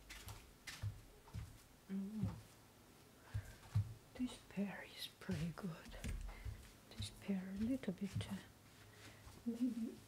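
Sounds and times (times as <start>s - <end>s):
soft low thumps: 0.8s - 2.5s, 3.3s - 4.6s, 5.2s - 8.5s
person whispering: 4.2s - 6.1s, 7.0s - 8.5s, 9.4s - 10.0s.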